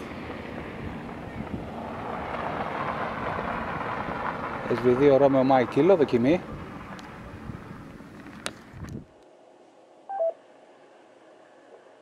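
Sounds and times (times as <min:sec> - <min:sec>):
steady outdoor rushing noise: 0:00.0 - 0:11.7.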